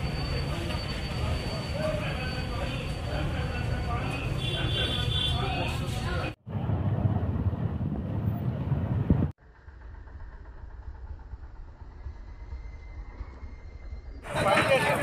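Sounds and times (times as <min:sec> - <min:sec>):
voices outdoors: 0:00.0 - 0:06.9, 0:14.2 - 0:15.0
vehicle rumble: 0:05.3 - 0:15.0.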